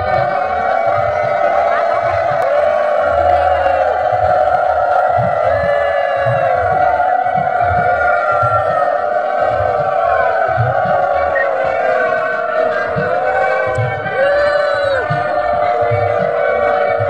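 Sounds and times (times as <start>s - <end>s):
crowd noise: 0.0s - 17.0s
low irregular thuds: 0.0s - 17.0s.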